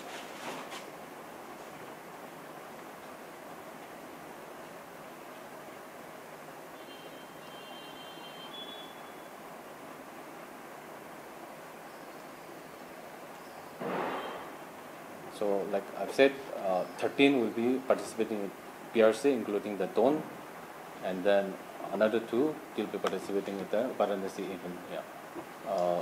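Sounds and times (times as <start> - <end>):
short rustling noise: 0.0 - 1.8
room noise hiss: 0.0 - 26.0
faint high tones: 6.8 - 9.3.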